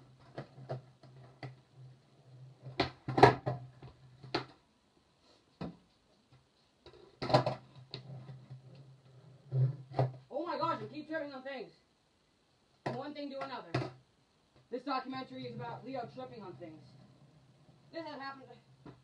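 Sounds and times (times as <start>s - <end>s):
skateboard clacking on concrete: 2.6s - 3.6s, 7.2s - 8.1s.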